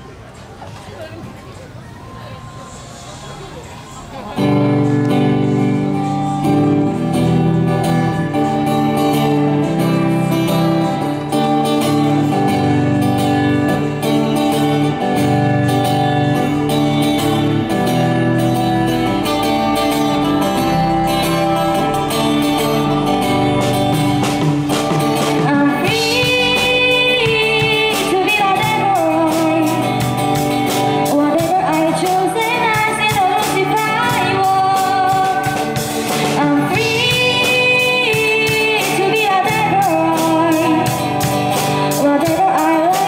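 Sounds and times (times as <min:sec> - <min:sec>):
drums: 0:00.0 - 0:43.0
live band playing: 0:02.3 - 0:43.0
guitars strumming chords: 0:04.0 - 0:43.0.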